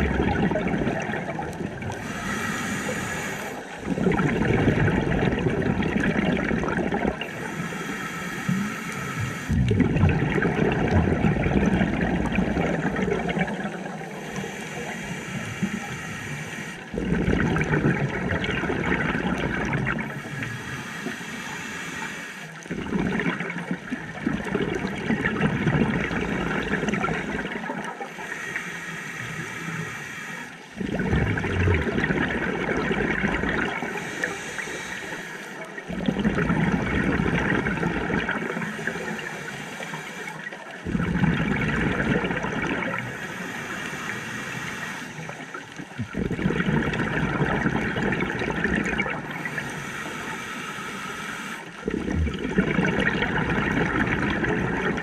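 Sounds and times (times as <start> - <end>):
gurgle of exhaled bubbles: 0.0 - 20.7, 22.6 - 28.3, 30.7 - 50.5, 51.6 - 55.0
diver inhaling through regulator: 0.6 - 12.1, 12.9 - 23.5, 26.1 - 52.2.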